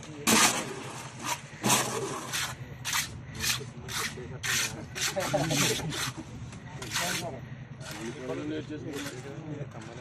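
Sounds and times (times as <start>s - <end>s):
trowel scraping wet mortar: 0.2s - 6.2s, 6.8s - 10.0s.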